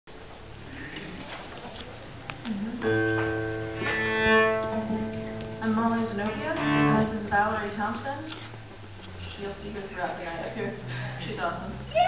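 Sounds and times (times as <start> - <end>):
cello bowing: 2.8 - 7.8.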